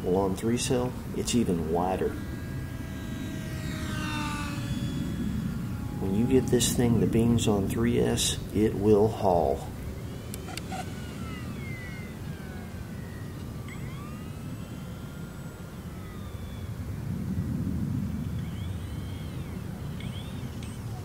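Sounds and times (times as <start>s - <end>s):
low rumble: 0.0s - 21.0s
model plane motor whine: 0.0s - 21.0s.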